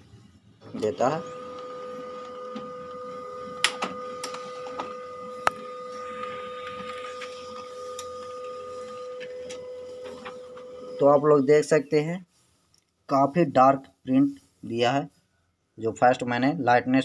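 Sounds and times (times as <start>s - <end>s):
laser printer running: 0.0s - 11.7s
high-pitched printer tone: 0.7s - 11.8s
printer mechanism clicks: 3.6s - 5.6s.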